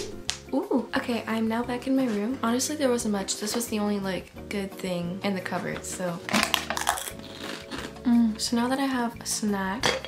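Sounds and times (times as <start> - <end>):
plastic lid crackling off can: 5.7 - 8.0.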